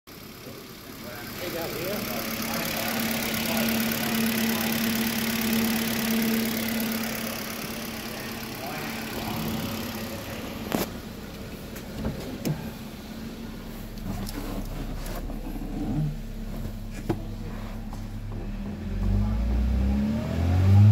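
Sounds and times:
car engine idling: 0.1 - 20.1.

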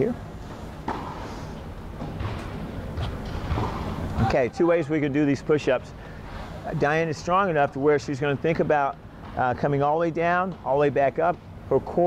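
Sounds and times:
low room rumble: 0.0 - 12.0.

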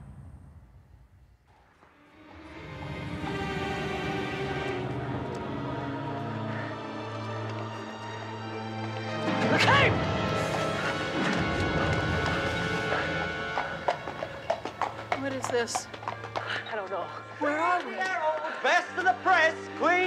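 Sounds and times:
horse hooves on cobbles: 7.0 - 20.0.

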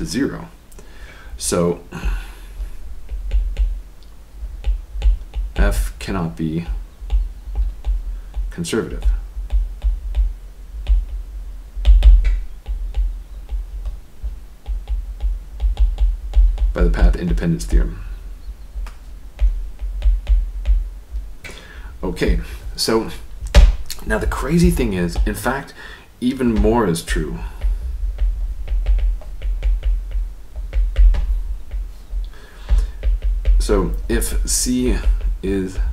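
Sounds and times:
low thuds: 1.0 - 25.6, 26.4 - 35.9
stylus tapping on tablet: 2.0 - 5.9, 6.7 - 21.6, 26.5 - 35.9.

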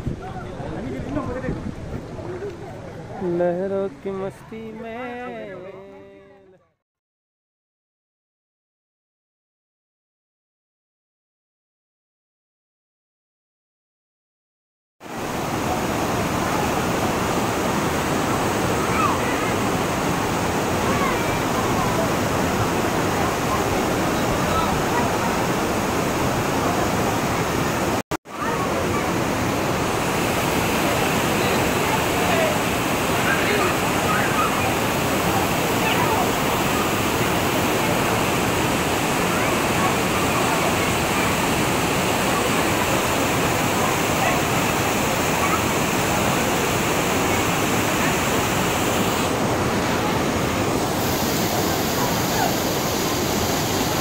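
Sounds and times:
water rushing over boulders: 15.0 - 54.0.

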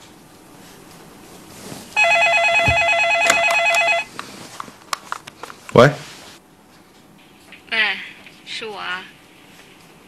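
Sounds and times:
telephone ringing electronic warble: 2.0 - 4.1.

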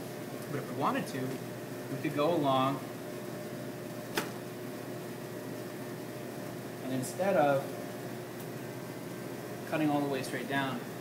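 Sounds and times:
ventilation hum: 0.0 - 11.0
sharp click: 4.1 - 4.4.

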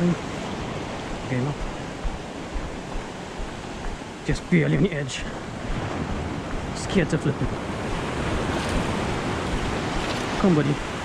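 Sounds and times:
waves washing against rocks: 0.0 - 11.0.

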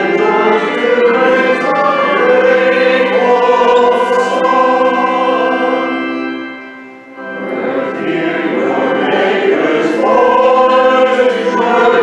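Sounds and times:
voices singing a hymn: 0.0 - 6.6, 7.2 - 12.0.

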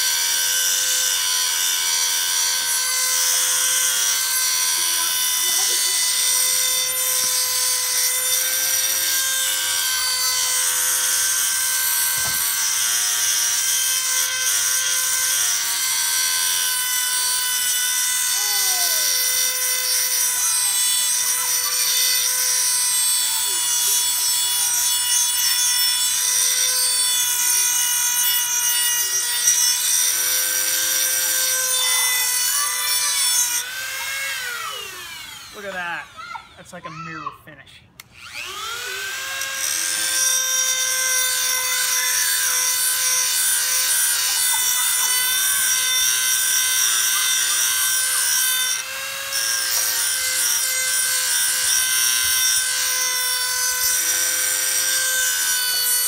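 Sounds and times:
grinding wheel on steel blade: 0.0 - 36.5, 38.2 - 56.0
rotary tool whine: 0.0 - 36.6, 38.0 - 56.0.

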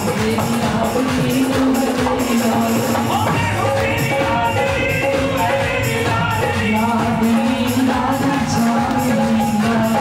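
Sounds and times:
dholak drumming: 0.0 - 10.0
jingling hand percussion: 0.0 - 10.0.

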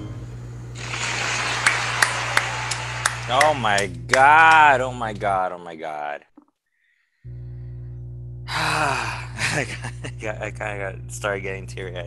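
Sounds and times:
audience applause: 0.8 - 4.8
sharp single claps: 0.9 - 5.2.

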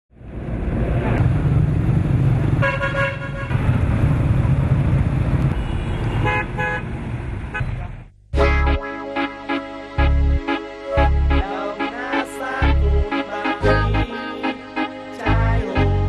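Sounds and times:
traffic engine rumble: 0.2 - 8.3
vehicle horns honking: 2.6 - 3.6, 5.5 - 6.9.

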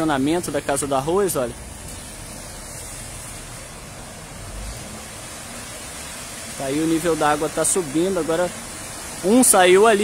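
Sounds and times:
tyres pushing through water: 0.0 - 10.0.

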